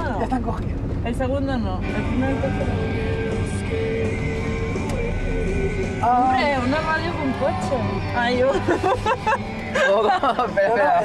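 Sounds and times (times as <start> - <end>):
engine and road rumble: 0.0 - 11.0
music from car stereo: 1.8 - 11.0.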